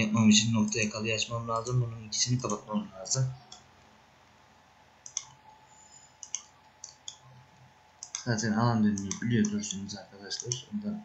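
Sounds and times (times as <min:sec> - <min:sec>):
computer mouse clicks: 0:00.4 - 0:02.7, 0:03.4 - 0:03.7, 0:05.0 - 0:10.8.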